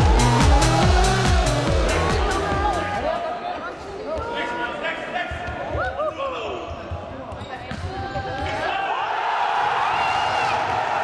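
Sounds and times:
ball kicked and bouncing on floor: 6.9 - 8.5.

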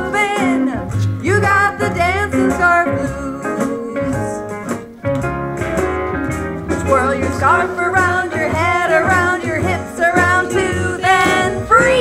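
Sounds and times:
person singing: 0.0 - 4.5, 6.7 - 12.0
children's blues song with guitar: 0.0 - 12.0.

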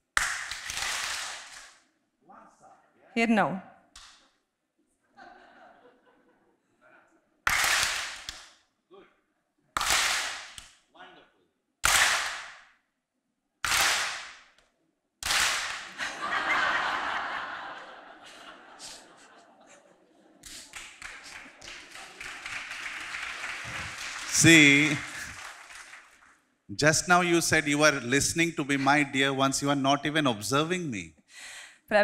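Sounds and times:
audience clapping together: 0.0 - 1.8, 7.4 - 8.6, 9.8 - 10.8, 11.8 - 12.7, 13.6 - 14.6, 15.2 - 16.6, 20.4 - 26.5
scattered clapping: 0.1 - 1.8, 7.5 - 8.6, 9.8 - 10.8, 11.8 - 12.7, 13.6 - 14.6, 15.2 - 16.0, 20.4 - 26.4
laughter: 5.0 - 7.4, 15.9 - 20.7
voices: 23.7 - 25.3.

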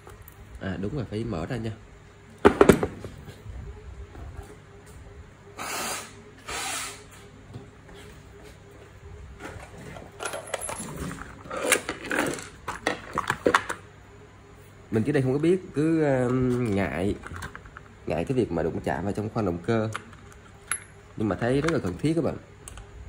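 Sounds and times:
metal parts clinking on workbench: 10.2 - 13.6.

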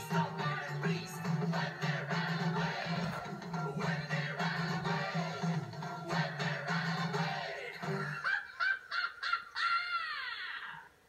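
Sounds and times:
cartoon backing music with bass: 0.0 - 8.2.

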